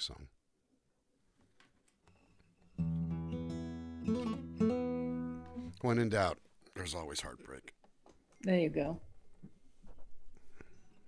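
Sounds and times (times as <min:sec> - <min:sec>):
guitar string and hand noises: 0:01.6 - 0:05.9
acoustic guitar chord strummed: 0:02.8 - 0:05.9.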